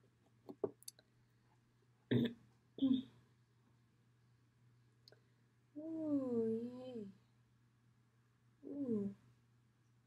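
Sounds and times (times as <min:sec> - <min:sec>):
woman humming: 0:05.8 - 0:07.1, 0:08.6 - 0:09.2.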